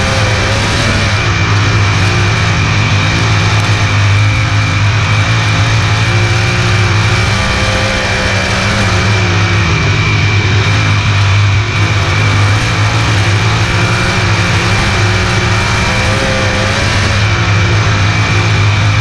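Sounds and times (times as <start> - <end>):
race car engine running: 0.0 - 19.0
steady high whine: 0.0 - 19.0.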